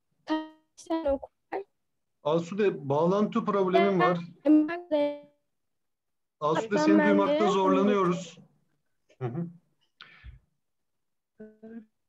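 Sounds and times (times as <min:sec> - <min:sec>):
person speaking over bad connection: 0:03.7 - 0:04.2, 0:06.4 - 0:08.4.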